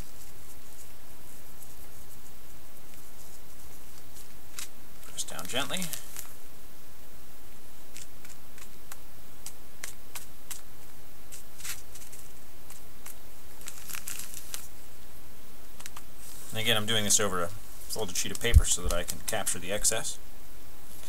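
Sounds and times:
steady background hiss: 0.0 - 21.0
plastic bag crinkling: 11.3 - 14.7.

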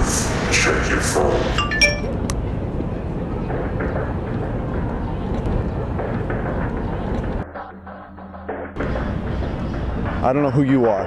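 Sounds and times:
traffic rumble: 0.0 - 7.5
outdoor hubbub of passers-by: 0.0 - 7.7, 8.8 - 11.0.

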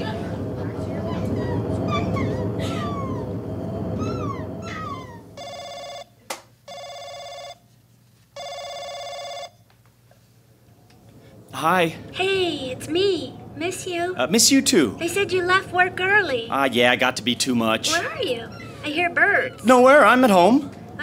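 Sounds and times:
low rumbling outdoor ambience: 0.0 - 6.7, 9.4 - 21.0
telephone ringing: 5.4 - 9.7.

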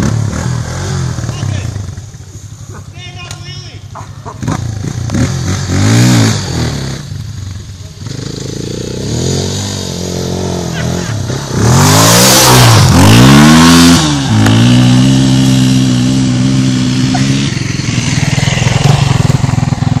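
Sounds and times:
dirt bike engine revving: 0.0 - 3.0, 3.6 - 20.0.

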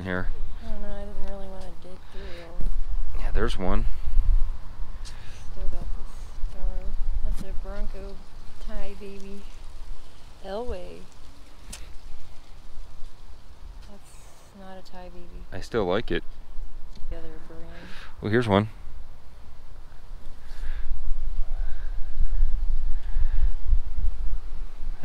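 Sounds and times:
wind buffeting microphone: 0.0 - 14.1, 14.7 - 25.0.

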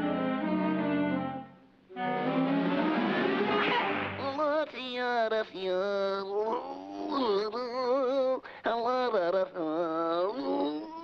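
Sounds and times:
orchestra playing cartoon music: 0.0 - 4.5.

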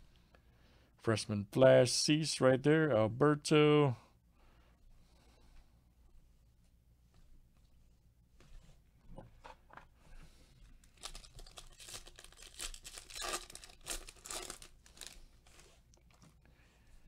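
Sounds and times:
foil wrapper tearing and crinkling: 10.9 - 15.6.

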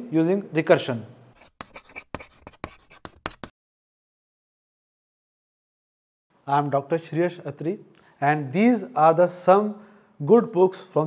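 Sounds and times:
chalk scratching on blackboard: 1.3 - 3.5.

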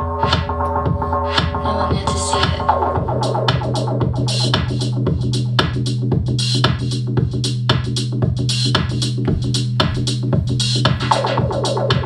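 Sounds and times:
fast percussive electronic beat: 8.2 - 12.0.

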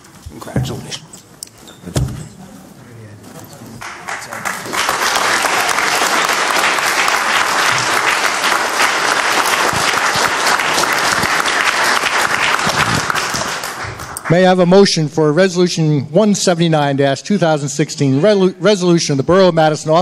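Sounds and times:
people applauding: 3.8 - 14.7.

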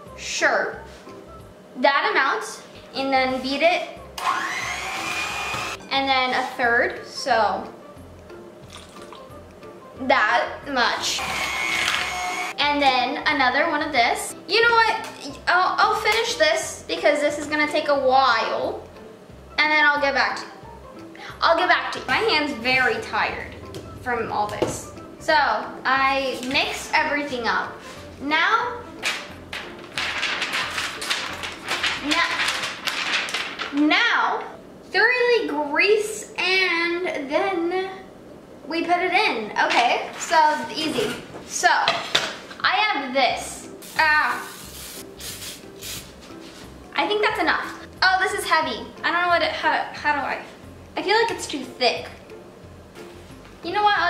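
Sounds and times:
electric hand mixer whining: 4.2 - 5.8, 11.1 - 12.6
paper flapping and rustling: 29.0 - 33.9.

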